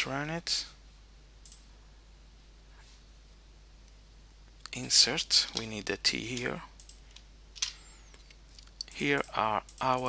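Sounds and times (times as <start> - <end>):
computer mouse clicks: 1.4 - 1.7, 6.3 - 10.0.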